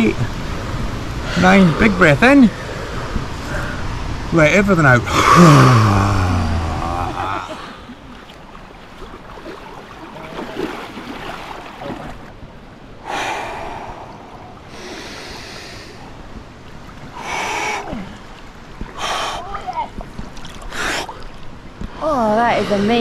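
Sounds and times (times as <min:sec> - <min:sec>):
rushing water: 0:00.0 - 0:23.0
people gasping in cold water: 0:05.0 - 0:12.2, 0:13.0 - 0:16.2, 0:17.1 - 0:20.0, 0:20.6 - 0:21.4.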